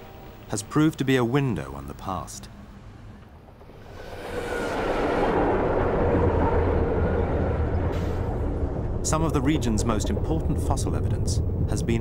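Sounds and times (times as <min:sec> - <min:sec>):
deep steady rumble: 0:00.0 - 0:12.0.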